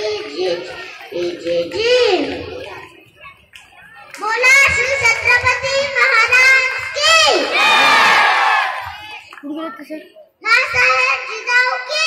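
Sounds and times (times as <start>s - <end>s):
children shouting and cheering: 0.0s - 9.4s, 10.4s - 12.0s.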